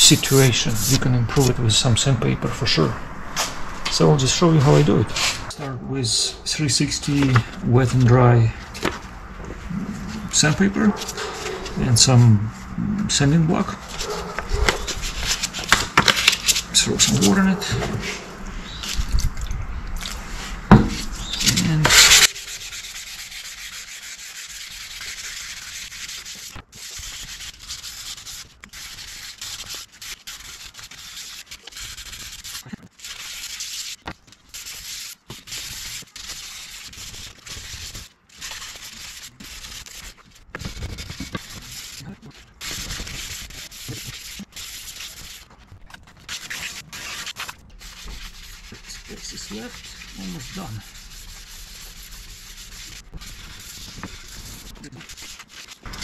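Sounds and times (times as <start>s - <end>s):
sandpaper rubbing wet surface: 0.0s - 1.6s, 9.6s - 19.2s, 20.0s - 56.0s
sharp knocks: 20.7s - 21.1s.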